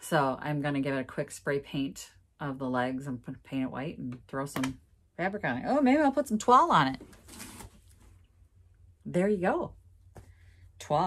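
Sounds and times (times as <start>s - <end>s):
fabric rustling: 7.0s - 8.2s.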